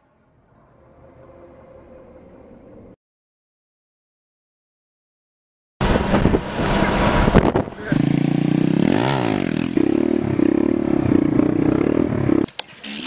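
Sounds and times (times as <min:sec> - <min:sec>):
motorcycle engine revving: 0:05.8 - 0:13.0
vehicle noise: 0:05.8 - 0:13.0.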